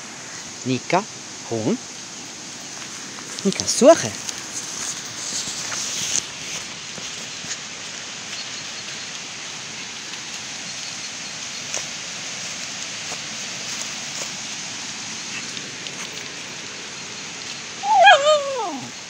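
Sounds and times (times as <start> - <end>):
footsteps in dry leaves: 2.2 - 19.0
dog whining: 17.8 - 18.9.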